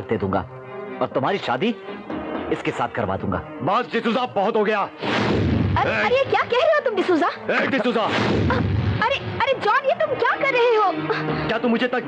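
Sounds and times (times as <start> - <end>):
deep rumbling burst: 5.0 - 6.2, 8.1 - 9.4.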